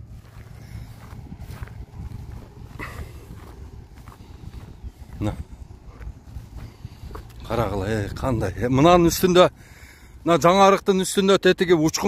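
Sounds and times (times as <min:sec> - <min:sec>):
low wind rumble on microphone: 0:00.0 - 0:10.6
footsteps on dry grass: 0:00.0 - 0:11.0.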